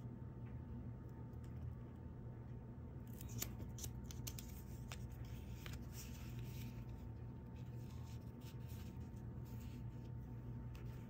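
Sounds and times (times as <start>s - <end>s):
paper pages rustling: 3.1s - 11.0s.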